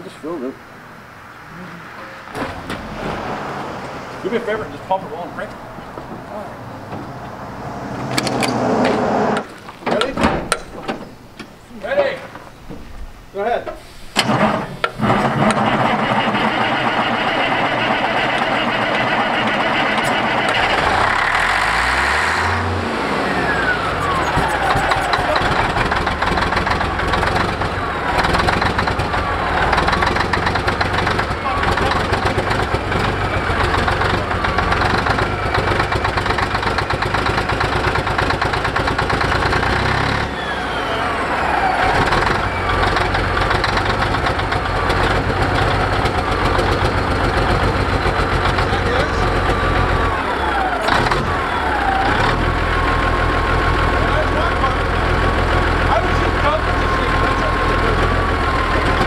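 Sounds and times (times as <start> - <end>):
engine revs falling whine: 1.0 - 9.8, 15.0 - 59.0
diesel engine cranking and running: 14.1 - 59.0.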